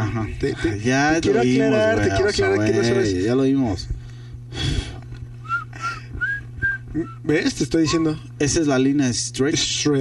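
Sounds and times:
steady low hum: 0:00.0 - 0:10.0
person whistling: 0:05.4 - 0:07.3.

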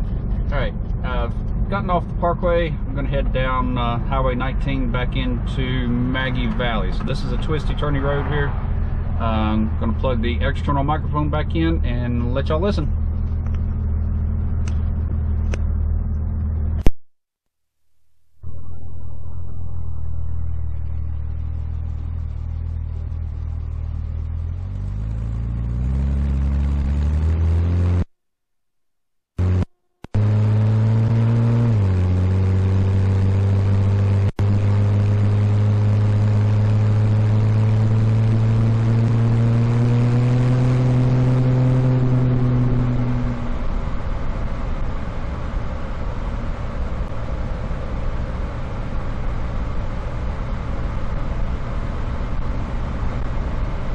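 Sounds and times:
car engine driving: 0:00.0 - 0:17.0, 0:18.7 - 0:28.1, 0:29.4 - 0:53.9
road and wind noise: 0:00.0 - 0:17.0, 0:20.4 - 0:28.1, 0:29.4 - 0:53.9.

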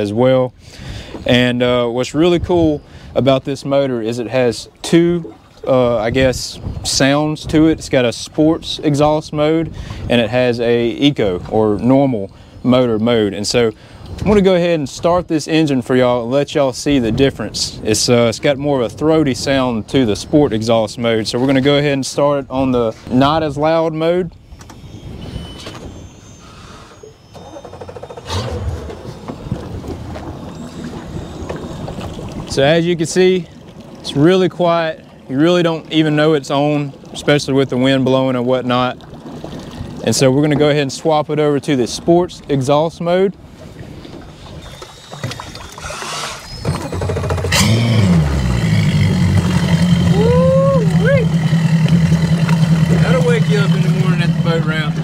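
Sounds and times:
outboard motor starting and idling: 0:24.6 - 0:40.8, 0:44.2 - 0:55.0.

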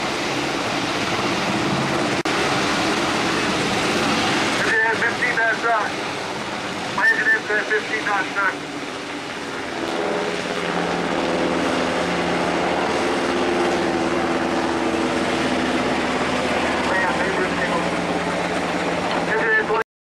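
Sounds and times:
helicopter rotor and engine: 0:00.0 - 0:19.8.

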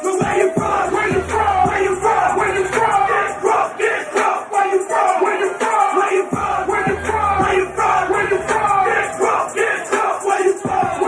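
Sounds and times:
crowd shouting together: 0:00.1 - 0:11.0.

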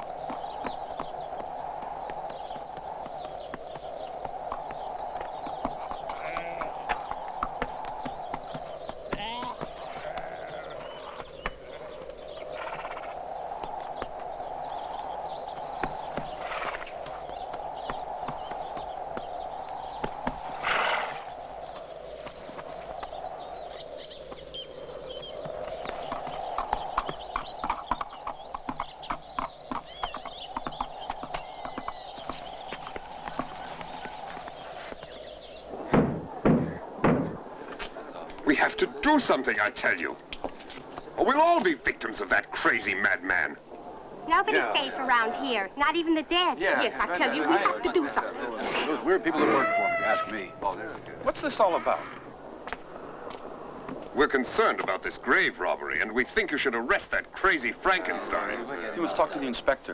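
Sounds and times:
horse hoofbeats on path: 0:00.0 - 0:11.9, 0:25.9 - 0:34.5
horse whinnies: 0:06.1 - 0:06.9, 0:49.4 - 0:50.6.

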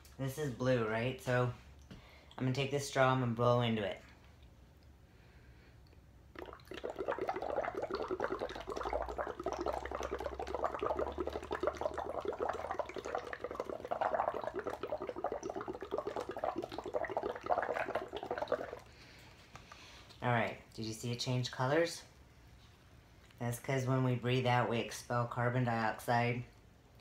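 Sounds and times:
blowing bubbles through a straw: 0:06.3 - 0:19.0.

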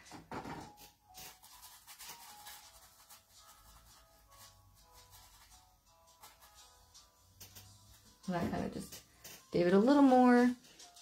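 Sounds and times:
soft background music: 0:00.0 - 0:11.0
brush scratching on canvas: 0:01.2 - 0:08.4.

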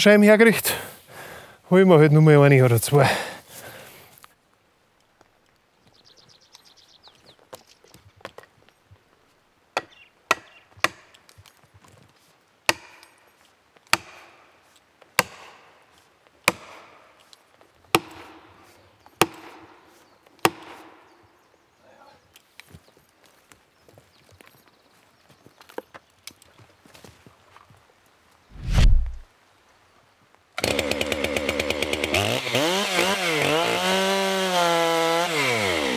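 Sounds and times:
axe striking felling wedges: 0:14.0 - 0:14.3, 0:15.2 - 0:15.6, 0:28.5 - 0:29.2.

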